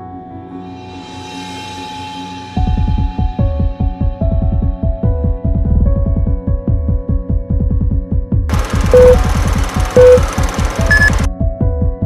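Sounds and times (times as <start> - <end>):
fast electronic music: 8.5 - 11.3
countdown beeps: 8.8 - 11.3
higher electronic tone: 8.8 - 11.3.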